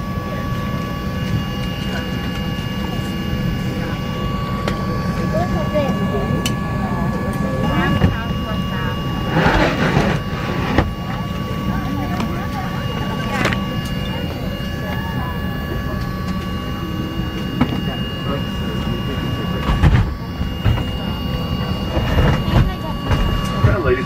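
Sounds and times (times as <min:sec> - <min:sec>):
low cabin hum with high whine: 0:00.0 - 0:24.0
soft passenger chatter: 0:00.0 - 0:24.0.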